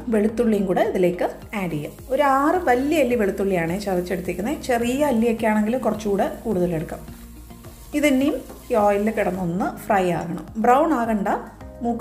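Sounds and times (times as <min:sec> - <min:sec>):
food sizzling in hot oil: 0:00.1 - 0:11.8
wooden spatula stirring: 0:01.4 - 0:09.8.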